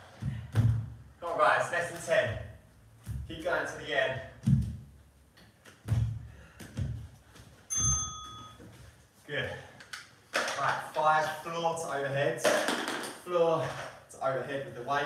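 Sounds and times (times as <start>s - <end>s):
bell-like ping: 7.7s - 8.6s.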